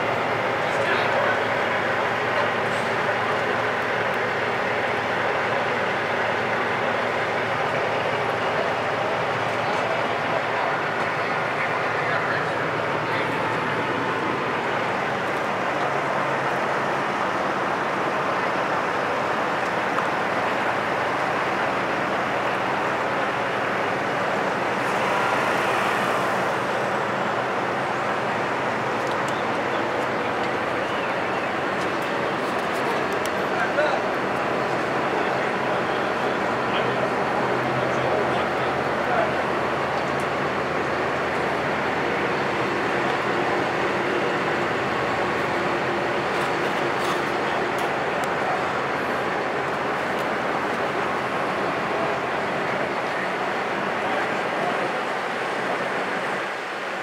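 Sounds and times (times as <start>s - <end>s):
truck engine idling: 0.0s - 57.0s.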